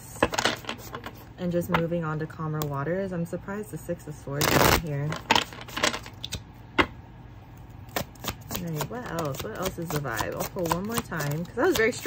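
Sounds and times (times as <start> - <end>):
cards being shuffled: 4.4 - 6.4.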